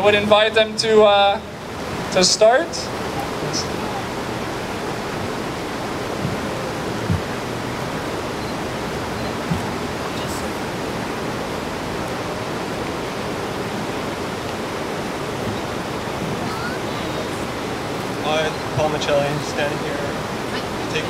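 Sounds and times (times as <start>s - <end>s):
river water rushing: 0.0s - 21.0s
low thumps: 3.2s - 10.8s.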